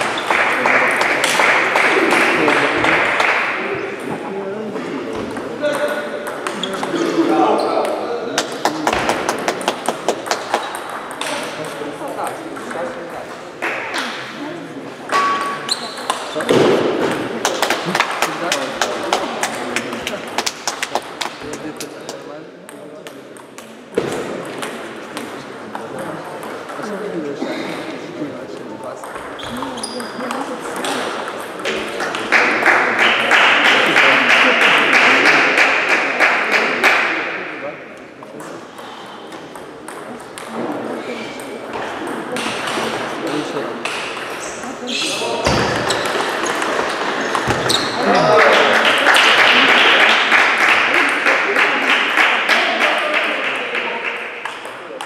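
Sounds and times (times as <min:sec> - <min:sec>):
table tennis balls clicking: 0:05.4 - 0:07.0, 0:07.8 - 0:12.7, 0:45.7 - 0:47.8.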